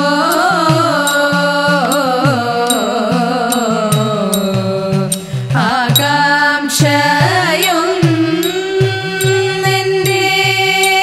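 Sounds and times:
group of women singing: 0.0 - 11.0
hourglass drum with bending pitch: 0.0 - 11.0.

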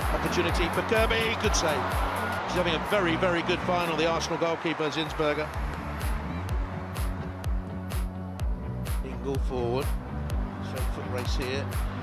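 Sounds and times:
background music with steady beat: 0.0 - 12.0
bass line: 5.4 - 12.0
bass drum: 5.5 - 12.0.

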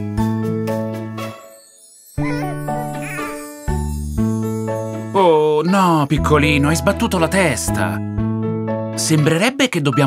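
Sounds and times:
instrumental children's music: 0.0 - 10.0.

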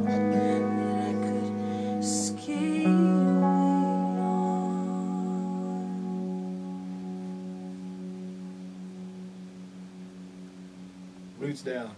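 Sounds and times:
guitar chord ringing: 0.0 - 11.9.

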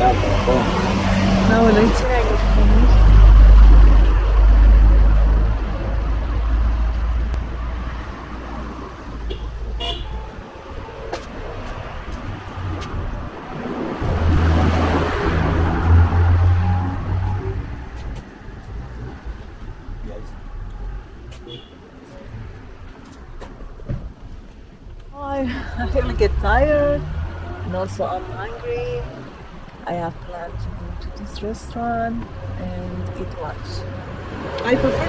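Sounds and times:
vehicle passing: 0.0 - 23.3, 25.3 - 35.0
low engine rumble: 0.0 - 35.0.

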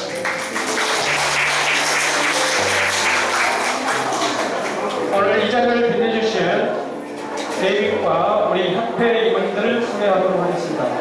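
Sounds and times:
audience clapping: 0.0 - 5.2
background music with low notes: 0.0 - 11.0.

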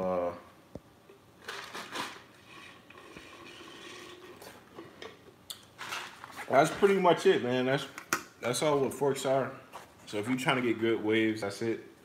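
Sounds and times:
cup scraping: 1.4 - 5.0.

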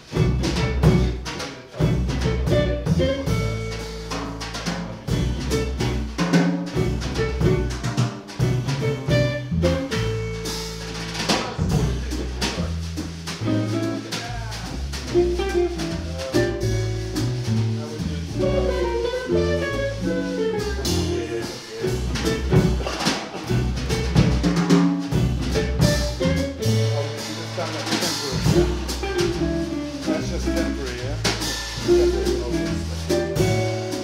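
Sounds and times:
jazz trio playing: 0.0 - 34.0.

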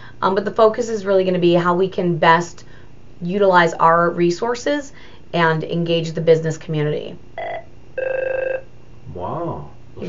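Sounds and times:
telephone electronic ringer: 7.4 - 8.7.

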